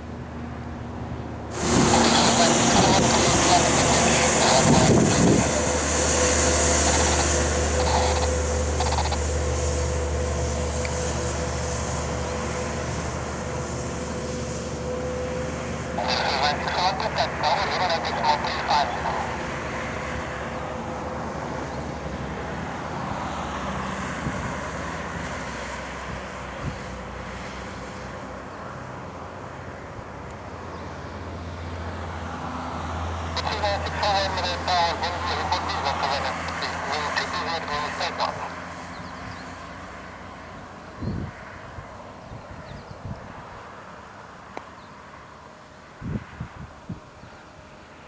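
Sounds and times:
distant jet engines rushing: 0.0s - 48.0s.

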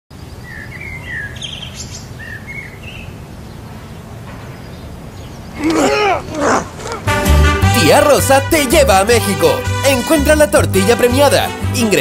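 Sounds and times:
birds chirping: 0.1s - 8.3s.

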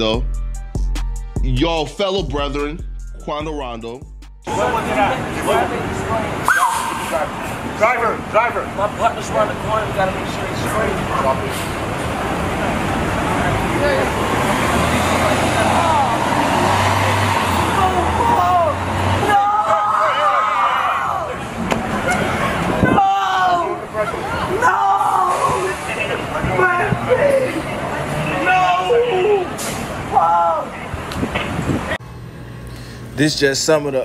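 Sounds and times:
vehicle engine humming: 0.0s - 19.6s, 21.0s - 34.0s
traffic: 1.5s - 34.0s
people calling out: 4.5s - 8.3s, 15.1s - 30.9s.

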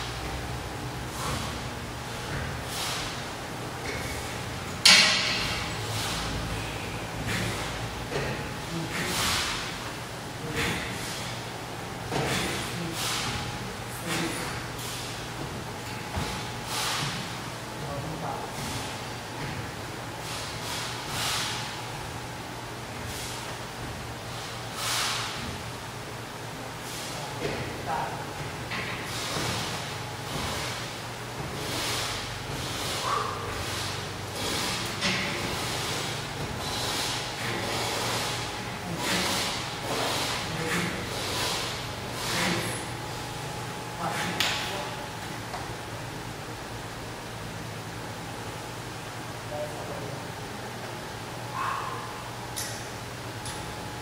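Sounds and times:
steady low hum: 0.0s - 54.0s
hard breaths and exhalations: 5.2s - 11.4s, 24.3s - 25.4s, 31.6s - 42.9s, 51.5s - 52.3s.

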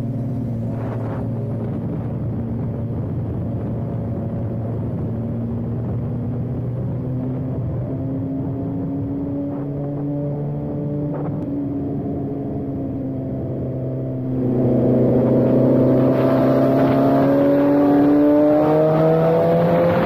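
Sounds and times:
motorcycle engine revving: 0.0s - 20.0s.

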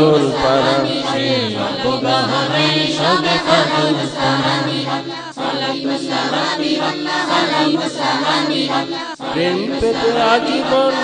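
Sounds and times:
group singing devotional chant: 0.0s - 11.0s.

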